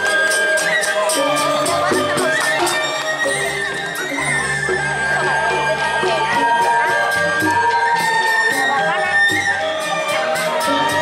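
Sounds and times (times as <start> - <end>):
bamboo flutes playing: 0.0 - 11.0
bronze metallophones ringing: 0.0 - 11.0.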